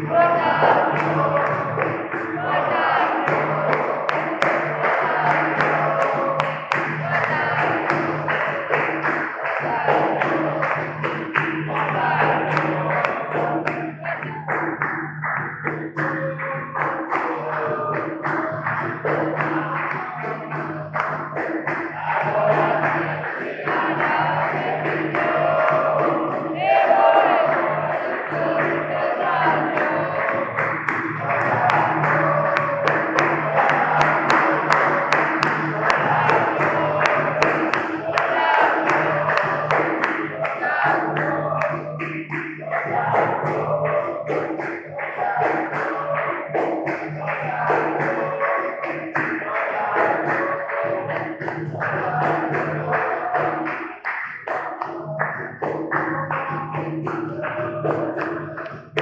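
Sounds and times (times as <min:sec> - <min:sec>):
group singing: 0:00.0 - 0:59.0
hand clapping: 0:00.0 - 0:59.0
hand drum rhythm: 0:00.0 - 0:59.0.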